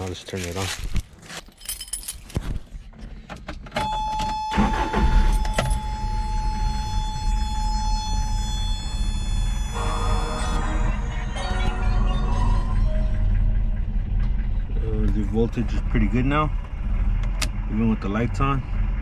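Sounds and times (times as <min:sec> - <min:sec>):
car engine cranking and idling: 0:00.0 - 0:19.0
keys jingling: 0:01.2 - 0:02.5
seatbelt warning buzzer: 0:03.8 - 0:11.1.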